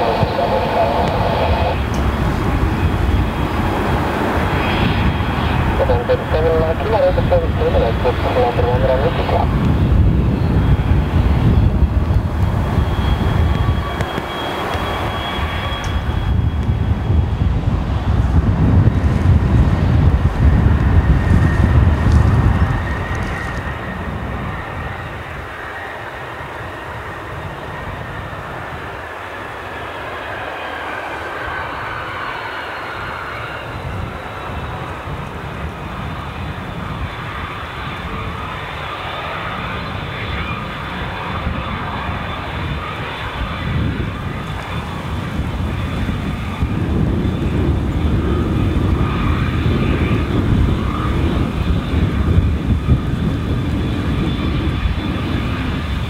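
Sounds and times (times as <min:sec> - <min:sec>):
jet turbofans whining: 0:00.0 - 0:56.0.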